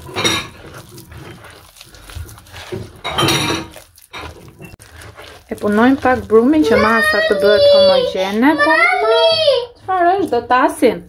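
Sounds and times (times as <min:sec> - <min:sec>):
hand squishing wet dough: 0:00.0 - 0:11.0.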